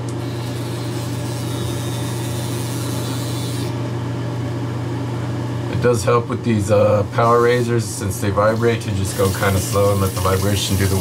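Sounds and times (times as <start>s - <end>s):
razor motor humming: 0.0s - 4.0s, 7.2s - 11.0s.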